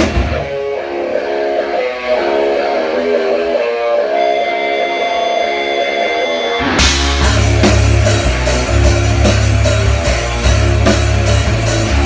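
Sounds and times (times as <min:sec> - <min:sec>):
electric guitar ringing notes: 0:00.0 - 0:12.0.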